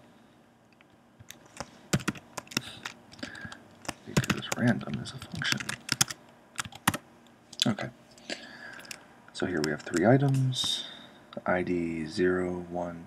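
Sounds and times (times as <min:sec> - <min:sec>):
computer keyboard typing: 0:01.2 - 0:07.0, 0:08.7 - 0:09.0, 0:09.6 - 0:10.4.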